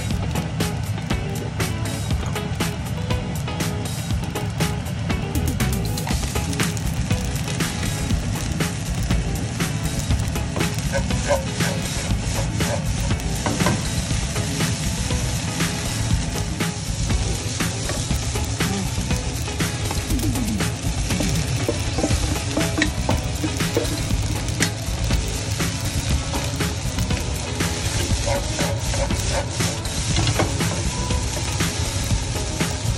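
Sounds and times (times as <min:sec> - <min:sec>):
rice sizzling in a wok: 0:00.0 - 0:32.9.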